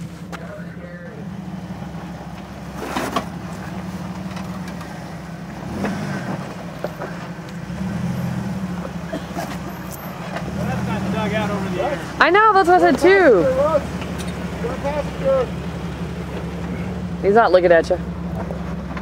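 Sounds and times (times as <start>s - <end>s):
car engine running at low revs: 0.0s - 19.0s.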